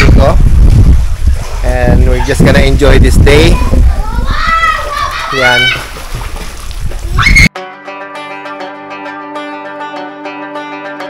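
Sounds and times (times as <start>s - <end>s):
wind rumbling on microphone: 0.0s - 7.5s
plucked string music: 7.6s - 11.0s.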